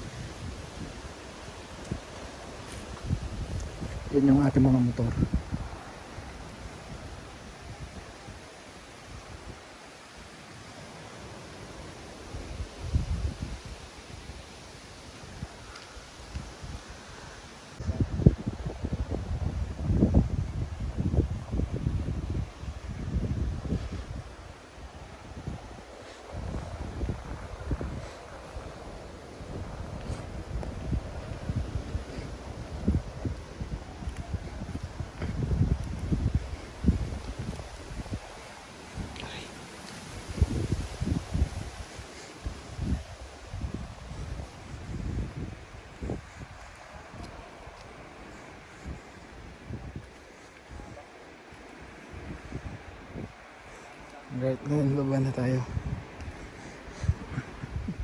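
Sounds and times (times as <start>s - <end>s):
rustle of leaves: 0.0s - 58.0s
wind buffeting microphone: 0.0s - 58.0s.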